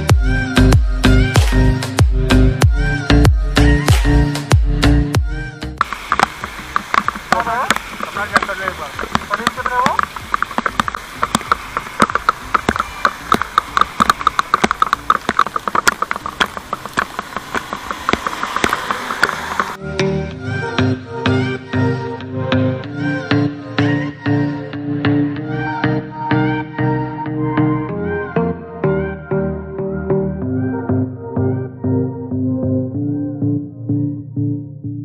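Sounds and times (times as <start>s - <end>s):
background music: 0.0s - 17.0s, 17.6s - 35.0s
heavy rain hiss: 5.8s - 19.8s
raindrops ticking near microphone: 5.8s - 19.8s.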